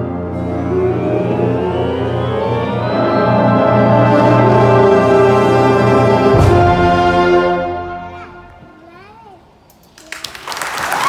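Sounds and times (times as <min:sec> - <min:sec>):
concert band chord: 0:00.0 - 0:08.7
audience applauding: 0:09.9 - 0:11.0.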